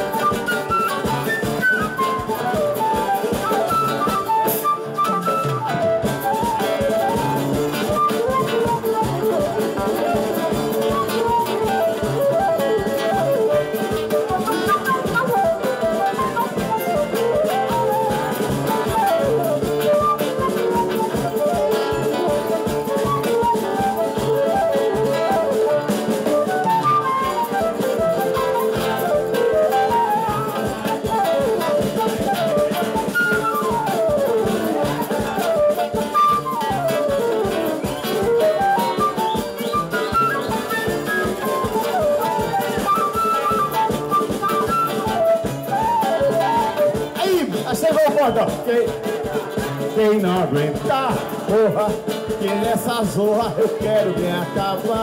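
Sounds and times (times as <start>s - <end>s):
saxophone: 0.0s - 47.2s
acoustic guitar: 0.0s - 55.0s
cavaquinho: 0.0s - 55.0s
drum kit: 0.0s - 55.0s
flute melody: 0.0s - 55.0s.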